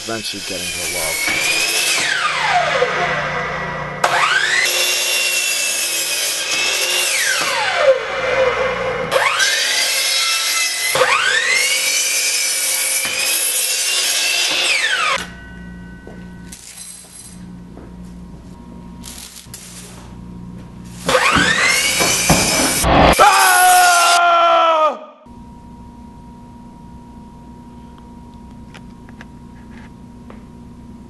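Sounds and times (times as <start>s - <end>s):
miter saw motor whining: 0.0s - 15.3s, 21.0s - 24.2s.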